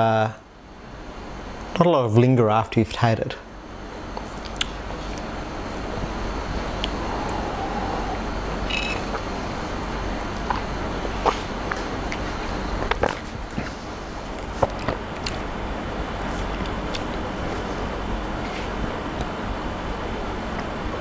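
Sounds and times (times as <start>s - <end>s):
low hum: 4.8s - 11.2s
background hiss: 5.6s - 10.4s.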